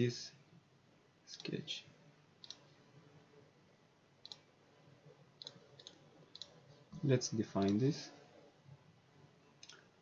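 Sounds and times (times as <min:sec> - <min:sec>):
faint computer mouse clicks: 0:02.4 - 0:02.6, 0:04.2 - 0:04.5, 0:05.4 - 0:06.6, 0:09.6 - 0:09.9.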